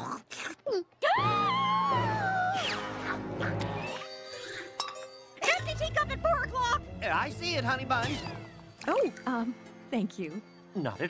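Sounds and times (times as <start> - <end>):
background music: 1.0 - 11.0.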